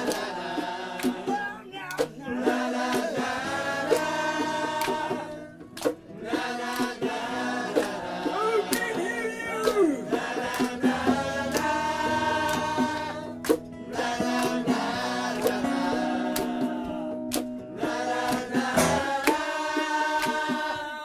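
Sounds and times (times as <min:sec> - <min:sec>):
hand percussion hits: 0:00.0 - 0:16.7, 0:17.3 - 0:20.8
acoustic guitar strumming: 0:00.0 - 0:21.0.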